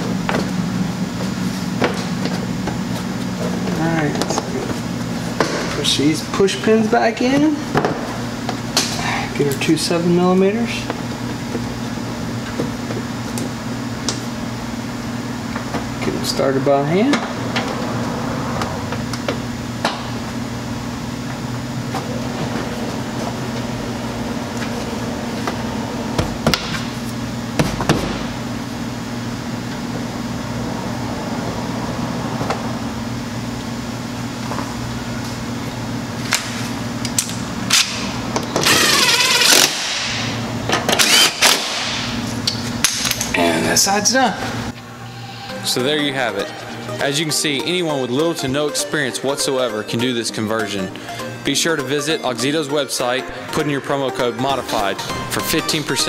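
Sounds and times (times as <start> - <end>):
steady low hum: 0.0 - 48.0
cordless power tool running: 40.9 - 42.1.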